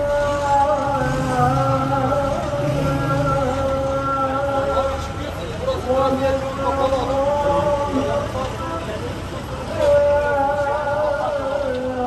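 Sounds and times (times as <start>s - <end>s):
person chanting long notes: 0.0s - 5.1s.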